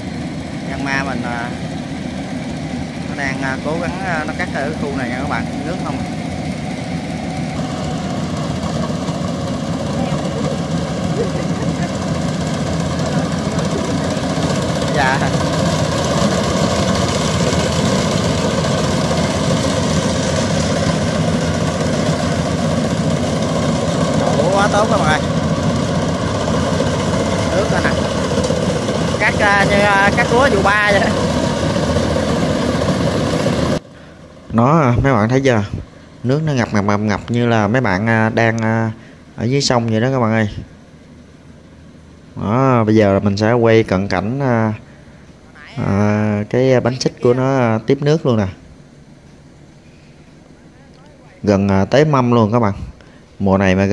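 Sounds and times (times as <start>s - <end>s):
combine harvester engine running: 0.0s - 53.4s.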